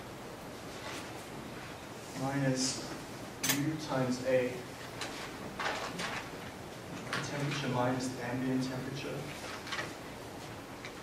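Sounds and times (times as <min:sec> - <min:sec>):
person speaking: 0:02.1 - 0:04.8, 0:07.1 - 0:09.6.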